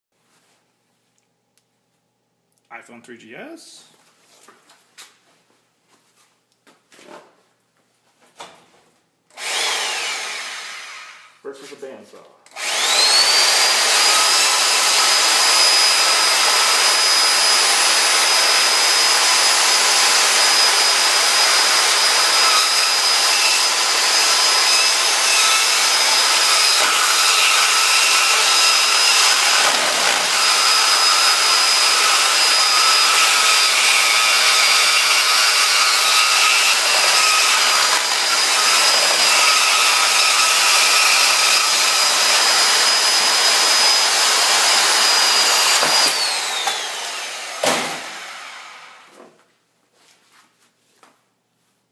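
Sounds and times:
bandsaw blade cutting: 0:09.3 - 0:11.3, 0:12.5 - 0:49.1
bandsaw running: 0:09.3 - 0:11.4, 0:12.5 - 0:49.1.

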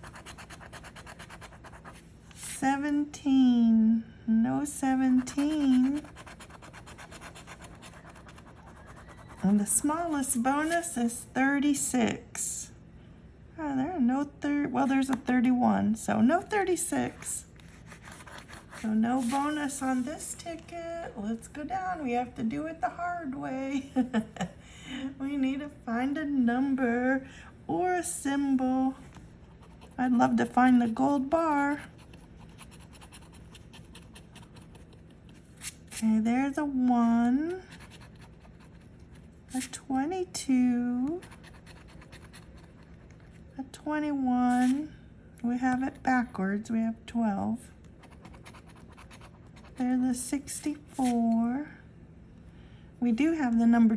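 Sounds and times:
coin scratching lottery ticket: 0:05.2 - 0:09.6.

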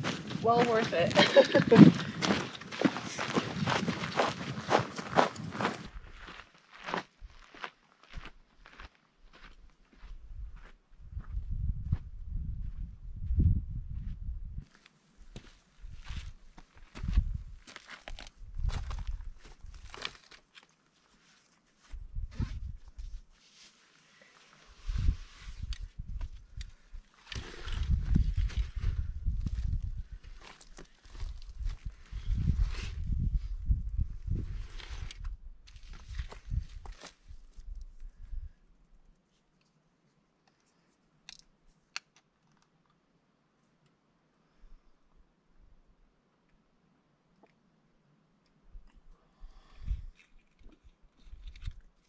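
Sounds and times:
footsteps on gravel: 0:00.0 - 0:10.1, 0:14.7 - 0:20.5.

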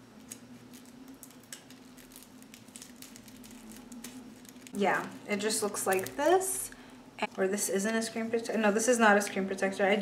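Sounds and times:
steady low hum: 0:00.0 - 0:10.0
plastic package crinkling: 0:00.2 - 0:05.0, 0:05.6 - 0:06.6.

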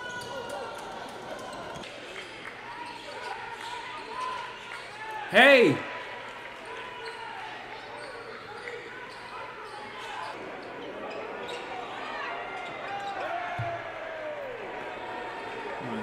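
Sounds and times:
crowd chatter: 0:05.2 - 0:06.0
sneakers squeaking: 0:07.8 - 0:11.8.

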